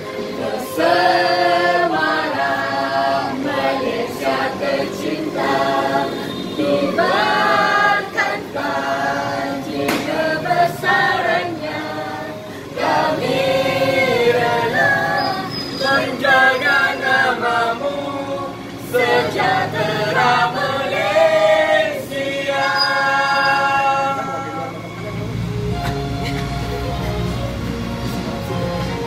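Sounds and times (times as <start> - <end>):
group singing in chorus: 0.0 - 26.6.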